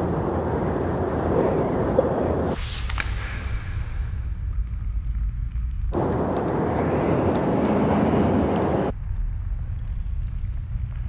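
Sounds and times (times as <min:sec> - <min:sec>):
deep steady rumble: 0:00.0 - 0:11.0
burst of rushing noise: 0:02.4 - 0:04.5.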